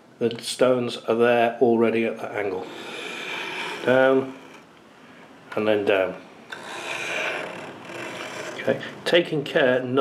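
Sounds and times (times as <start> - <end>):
knife scraping on sharpening rod: 2.6 - 4.7, 6.5 - 8.8.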